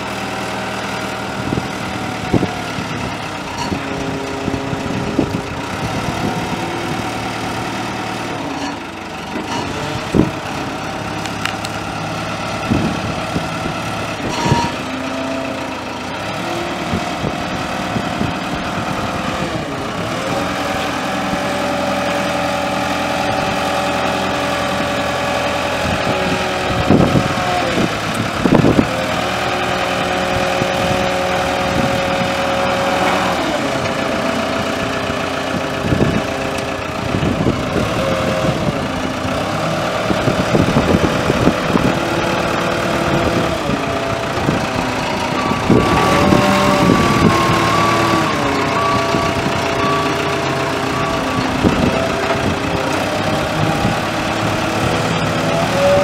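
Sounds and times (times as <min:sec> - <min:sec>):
diesel engine revving: 0:00.0 - 0:56.0.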